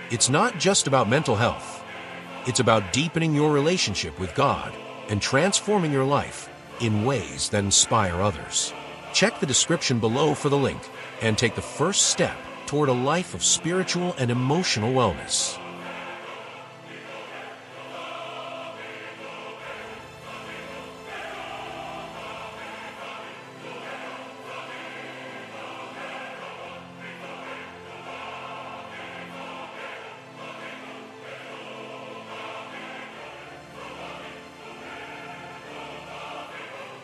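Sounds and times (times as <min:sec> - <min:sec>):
choir singing slow chords: 0:00.0 - 0:37.0.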